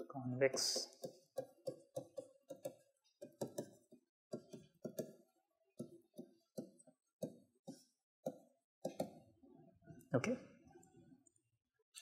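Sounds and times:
stylus tapping on tablet: 0.0s - 9.2s.

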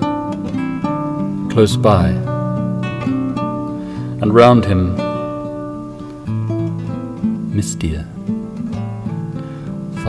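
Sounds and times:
classical guitar playing: 0.0s - 10.0s.

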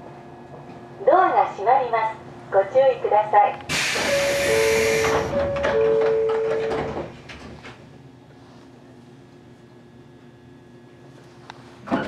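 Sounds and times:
train doors clunking shut: 3.6s - 7.8s
air hiss: 3.7s - 5.3s.

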